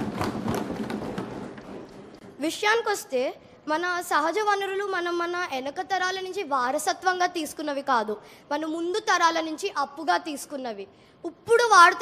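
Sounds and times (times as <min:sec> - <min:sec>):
crowd clapping and tapping desks: 0:00.0 - 0:02.3.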